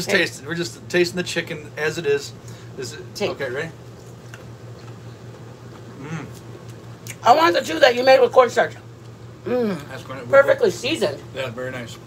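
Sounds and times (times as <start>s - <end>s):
steady low hum: 0.0s - 12.0s
chewing crispy fried chicken: 3.8s - 7.2s.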